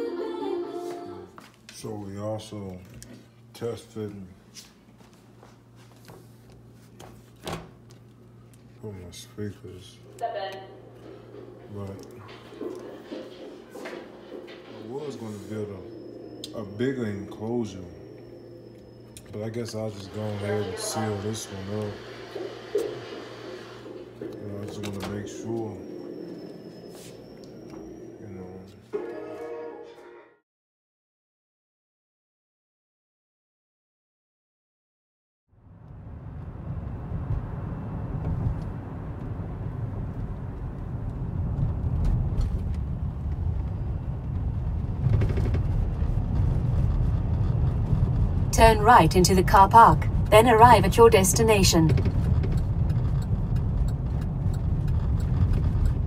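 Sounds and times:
car engine and tyre rumble: 35.7s - 50.5s, 51.9s - 56.0s.

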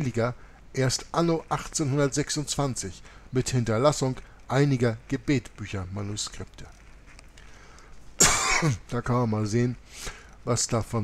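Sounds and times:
man clearing throat: 8.2s - 8.9s.

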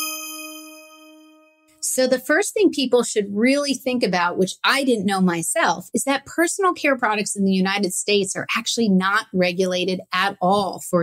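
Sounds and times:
bell-like chime: 0.0s - 1.8s.

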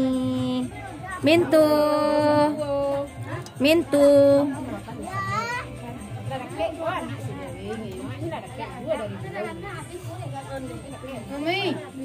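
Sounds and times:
faint music with low beat: 0.0s - 12.0s.

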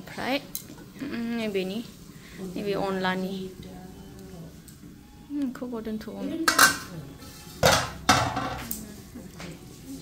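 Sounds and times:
metal utensils clanking on pan: 6.4s - 8.8s.

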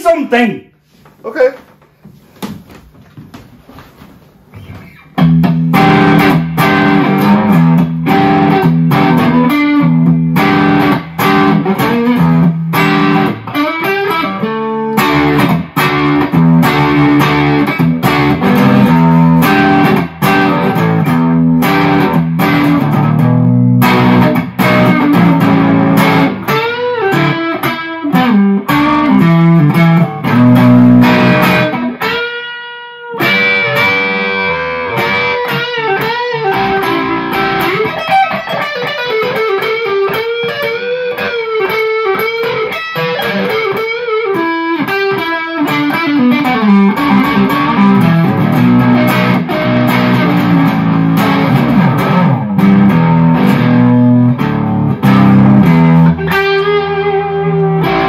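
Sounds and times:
electric guitar through amplifier: 2.7s - 58.0s.

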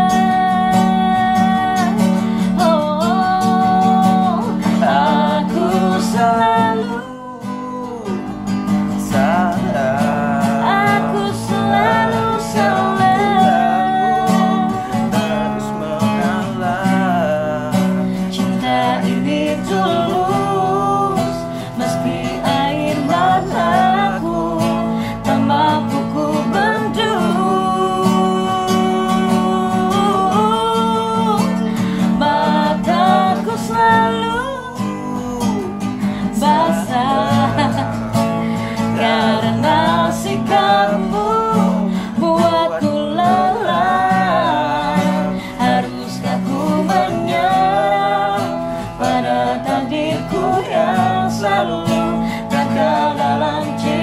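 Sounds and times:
acoustic guitar strumming: 0.0s - 54.0s
person singing: 0.0s - 54.0s.

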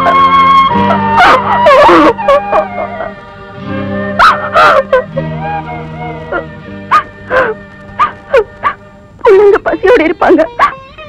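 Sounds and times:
film score: 0.0s - 10.7s
woman sobbing: 0.9s - 3.2s, 4.3s - 5.4s, 7.3s - 7.6s, 8.2s - 8.6s.

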